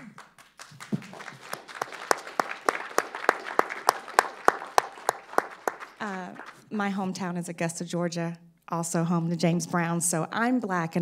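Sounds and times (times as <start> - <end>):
audience applause: 0.0 - 6.6
steady single clapping: 0.0 - 6.6.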